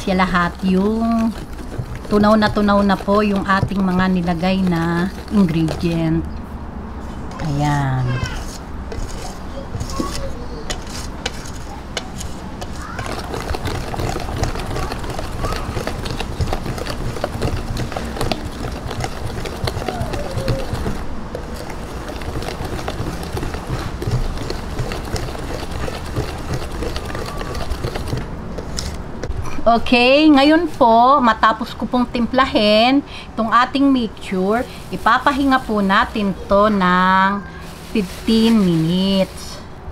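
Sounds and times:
liquid swishing: 0:00.0 - 0:29.4
whisk clinking in metal bowl: 0:12.0 - 0:28.2.

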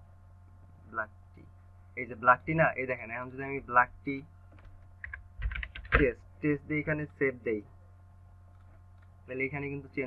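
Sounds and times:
computer keyboard typing: 0:04.6 - 0:06.1.

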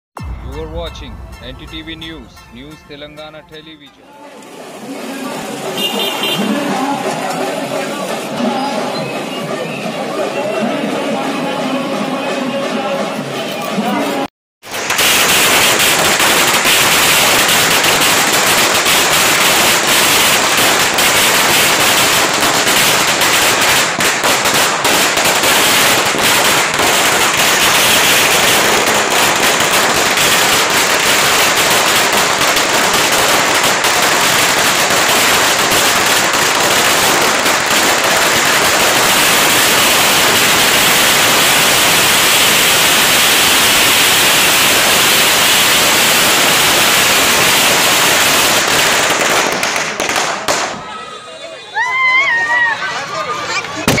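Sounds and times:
firecrackers bursting: 0:04.4 - 0:10.2, 0:14.6 - 0:51.0, 0:53.5 - 0:54.0.

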